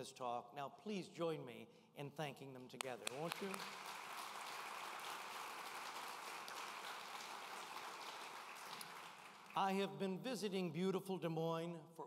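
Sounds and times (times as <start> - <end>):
audience applauding: 2.8 - 9.9.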